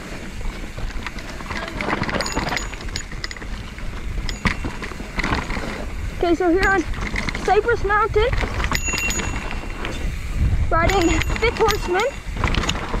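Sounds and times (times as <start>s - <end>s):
bike tyres on dirt: 0.0s - 13.0s
chain and frame rattling: 0.0s - 13.0s
wind rumble on microphone: 0.0s - 13.0s.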